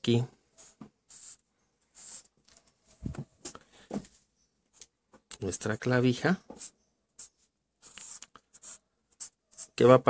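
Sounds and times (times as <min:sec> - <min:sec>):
marker pen scratching on paper: 0:00.5 - 0:03.5, 0:06.4 - 0:10.0.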